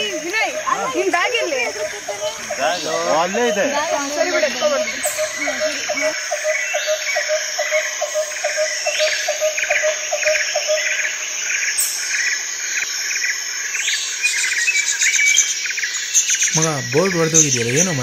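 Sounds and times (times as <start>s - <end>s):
birds chirping: 0.0s - 18.0s
high insect buzz: 0.0s - 18.0s.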